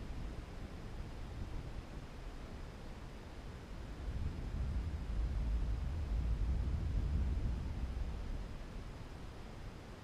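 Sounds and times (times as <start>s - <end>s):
faint steady hiss: 0.0s - 10.0s
wind buffeting microphone: 3.6s - 9.3s.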